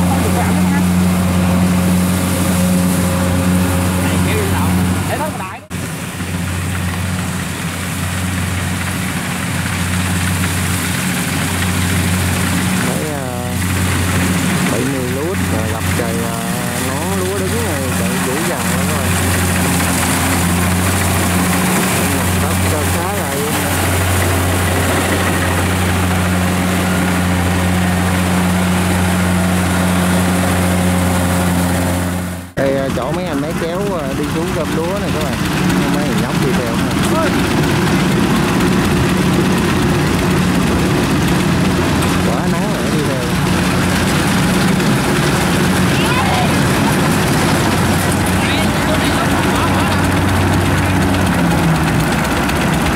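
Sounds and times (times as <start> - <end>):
voices: 0.0 - 5.7, 11.6 - 30.6, 32.6 - 40.8, 41.4 - 52.8
combine harvester engine humming: 0.0 - 52.9.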